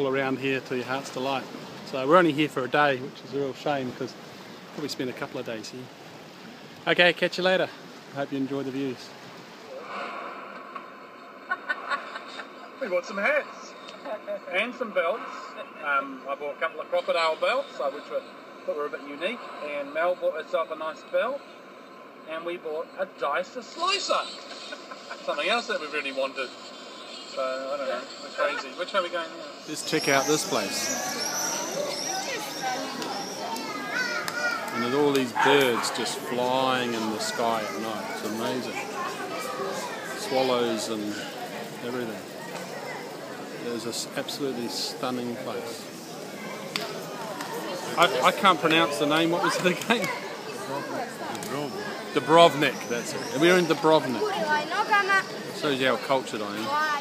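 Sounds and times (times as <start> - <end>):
people's voices: 0.0 - 6.0, 6.7 - 57.0
birds chirping: 0.0 - 57.0
seaside ambience hiss: 0.0 - 57.0.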